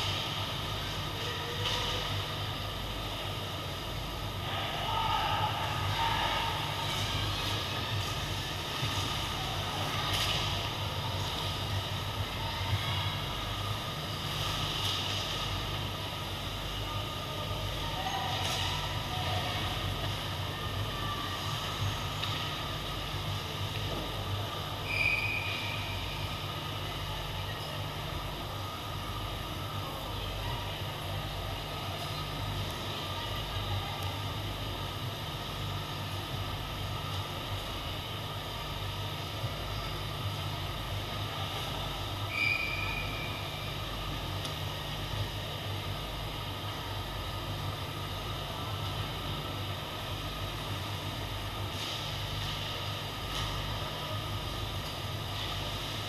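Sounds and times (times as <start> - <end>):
steady low hum: 0.0 - 56.0
faint rink noise: 4.4 - 28.5.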